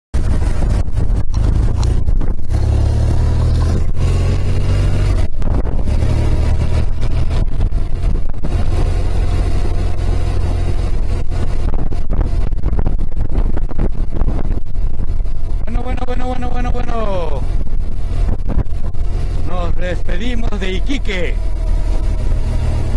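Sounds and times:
motorcycle engine rumbling: 0:00.1 - 0:22.9.

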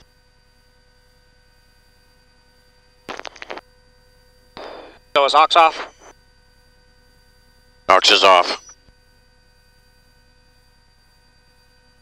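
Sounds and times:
faint hum tones: 0:00.5 - 0:08.7
radio hiss: 0:03.1 - 0:03.6, 0:04.6 - 0:06.1, 0:07.9 - 0:08.7
garbled radio burst: 0:04.6 - 0:06.1, 0:07.9 - 0:08.7.

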